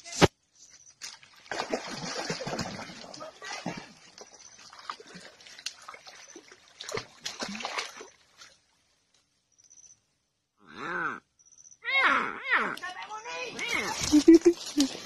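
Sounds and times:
dry leaves rustling and crackling: 0:13.5 - 0:15.0.

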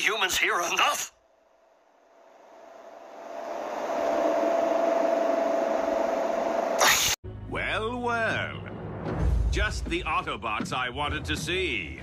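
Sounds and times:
steady hum: 0:01.2 - 0:07.2
rushing noise: 0:01.8 - 0:07.2.

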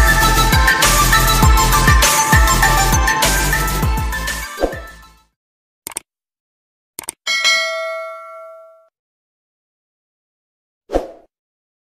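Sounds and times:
quick clicks: 0:05.9 - 0:06.1, 0:07.0 - 0:07.2
bright bell ding: 0:07.3 - 0:08.9.

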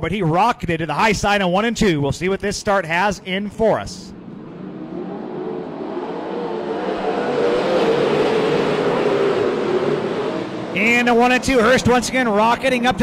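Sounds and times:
race car engines accelerating: 0:04.0 - 0:13.0.

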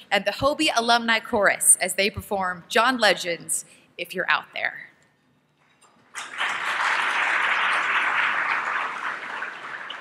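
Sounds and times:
audience applauding: 0:06.2 - 0:10.0.

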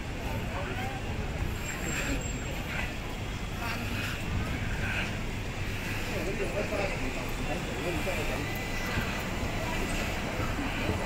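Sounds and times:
passers-by talking indistinctly: 0:00.0 - 0:11.0
road traffic rumble: 0:00.0 - 0:11.0.

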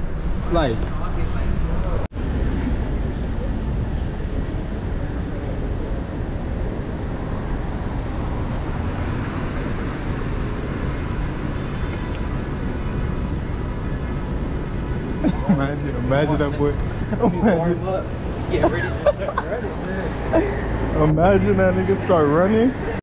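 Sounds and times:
city street traffic rumble: 0:00.0 - 0:23.0.

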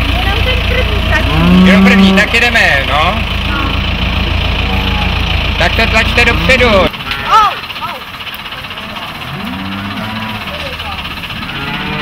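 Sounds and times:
diesel tractor engine idling: 0:00.0 - 0:12.0.

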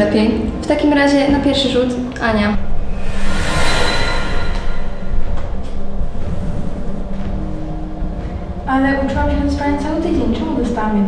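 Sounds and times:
low rumbling drone: 0:02.5 - 0:09.5.

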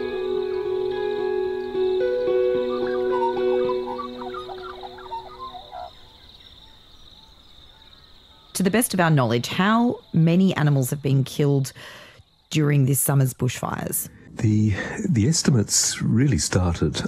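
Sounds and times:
soft plucked-string music: 0:00.0 - 0:05.3
crickets trilling: 0:00.0 - 0:16.5.

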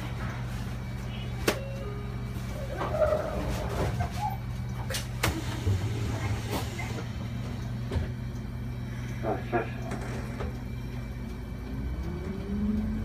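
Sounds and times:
bus engine low drone: 0:00.0 - 0:13.0.

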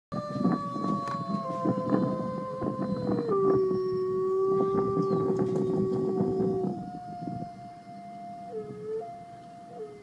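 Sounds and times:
dog howling: 0:00.1 - 0:10.0.

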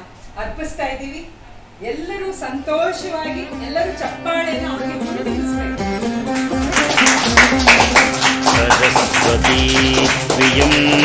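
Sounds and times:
devotional music: 0:03.3 - 0:11.0
group clapping in rhythm: 0:05.9 - 0:11.0.

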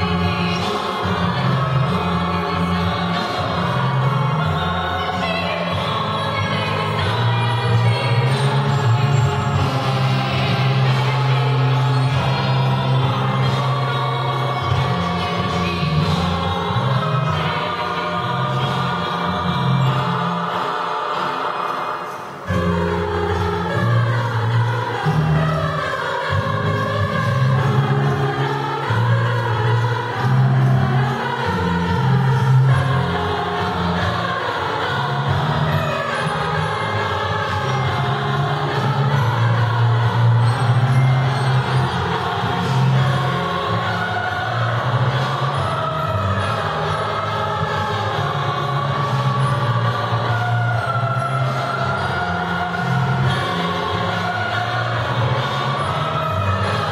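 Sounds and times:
children's choir singing: 0:00.0 - 0:56.9.

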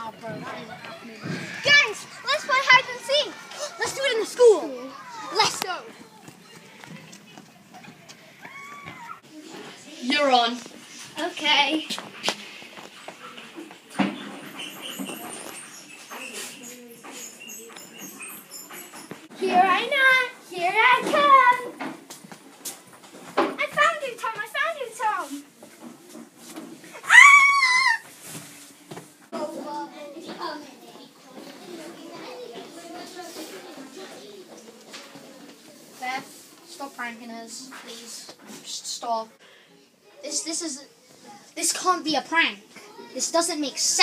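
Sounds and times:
children's running footsteps: 0:00.2 - 0:09.3
child's high-pitched cry: 0:08.4 - 0:09.2, 0:27.0 - 0:28.1.

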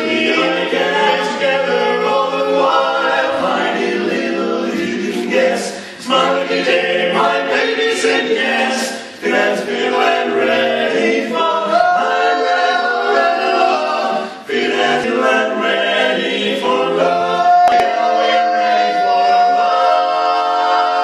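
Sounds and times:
male quartet singing a cappella: 0:00.0 - 0:21.0.

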